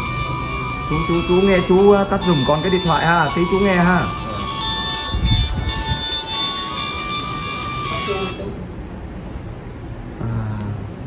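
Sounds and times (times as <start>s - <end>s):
mobile phone ringtone: 0.0s - 8.5s.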